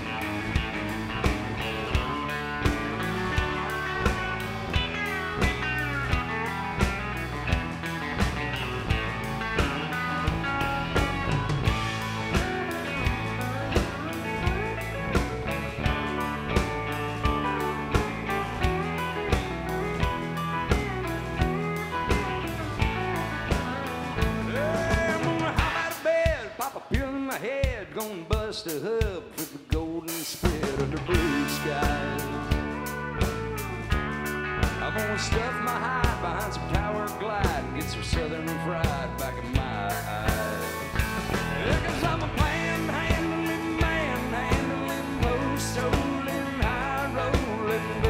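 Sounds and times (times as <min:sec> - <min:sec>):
drum beat: 0:00.0 - 0:48.0
honky-tonk band playing: 0:00.0 - 0:48.0
lead electric guitar: 0:00.0 - 0:48.0.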